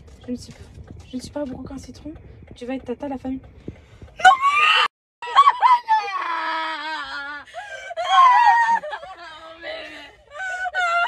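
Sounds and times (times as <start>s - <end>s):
women squealing: 4.2s - 11.0s.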